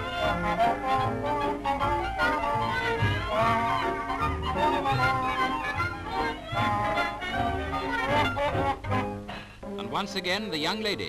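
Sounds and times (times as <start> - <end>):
dance-band music: 0.0 - 11.0.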